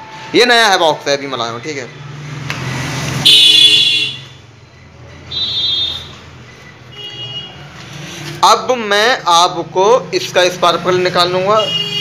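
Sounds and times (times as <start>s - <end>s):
vehicle horn honking: 3.2s - 4.4s, 5.3s - 6.2s, 6.9s - 7.7s, 11.6s - 12.0s.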